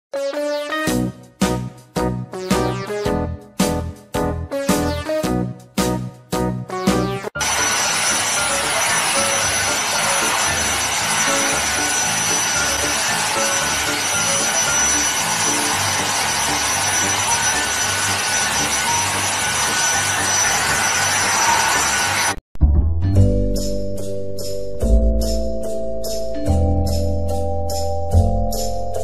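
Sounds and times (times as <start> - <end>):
background music: 0.1 - 29.0
stick vacuum whining: 7.4 - 22.4.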